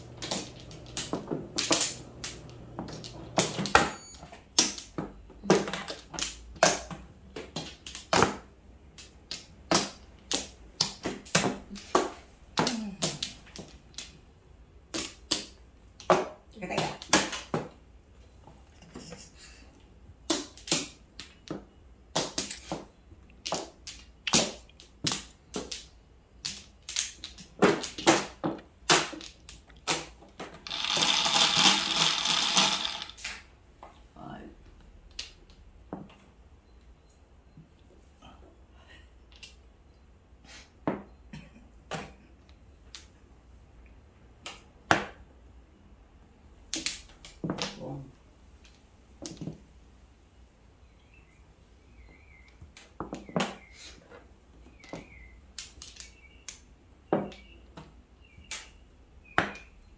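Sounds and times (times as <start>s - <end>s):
mahjong tiles clacking: 0.0s - 16.2s, 20.2s - 33.4s.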